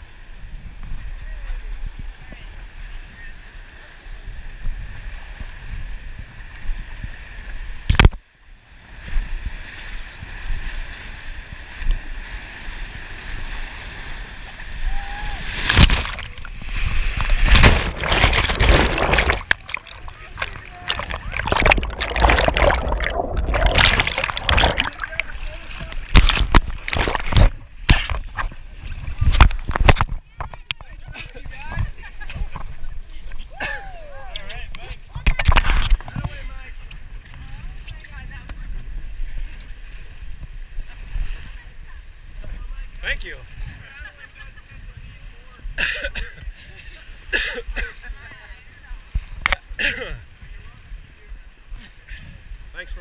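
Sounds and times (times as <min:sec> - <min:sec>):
wind on microphone: 0:00.0 - 0:03.4, 0:04.2 - 0:08.2, 0:13.0 - 0:45.8, 0:48.1 - 0:52.7
river rapids splashing: 0:15.4 - 0:28.5
knocking and rubbing on microphone: 0:17.1 - 0:25.2, 0:25.8 - 0:31.1.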